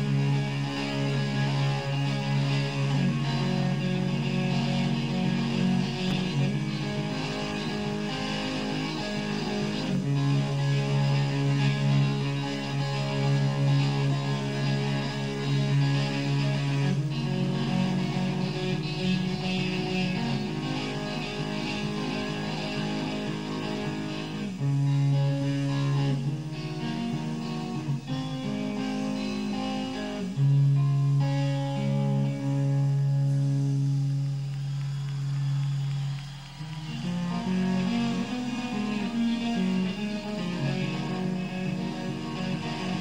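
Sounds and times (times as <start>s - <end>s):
electric guitar playing: 0.0s - 43.0s.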